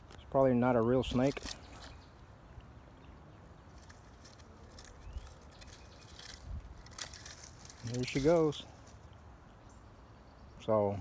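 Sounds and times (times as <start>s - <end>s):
dry grass and twigs crackling: 0.0s - 10.0s
wind rumble on microphone: 5.0s - 7.7s.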